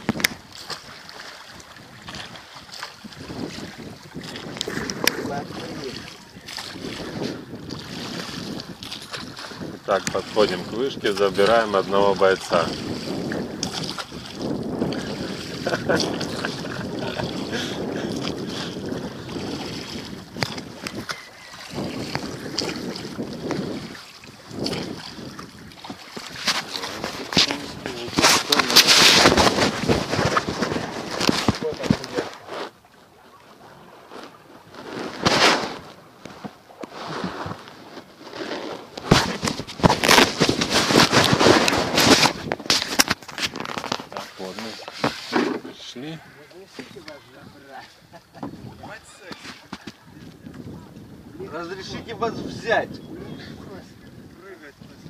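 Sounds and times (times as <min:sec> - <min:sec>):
wind rushing over microphone: 0:03.0 - 0:32.4, 0:38.8 - 0:44.2, 0:47.2 - 0:55.0.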